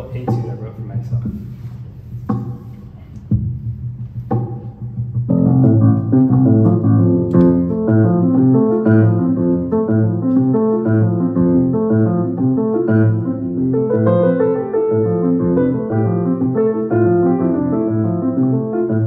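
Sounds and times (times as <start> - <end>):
jazz piano playing: 3.3 - 19.0.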